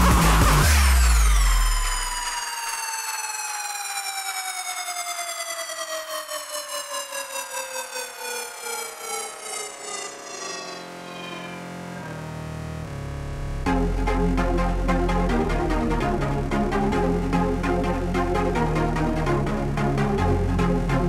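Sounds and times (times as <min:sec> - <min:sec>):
beat and bass: 0:00.0 - 0:02.3, 0:08.7 - 0:21.0
wobbling synth tone gliding downward: 0:06.8 - 0:13.3.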